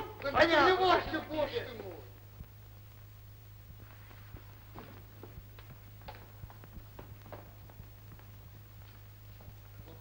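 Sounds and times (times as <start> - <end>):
low film soundtrack hum: 0.0 - 10.0.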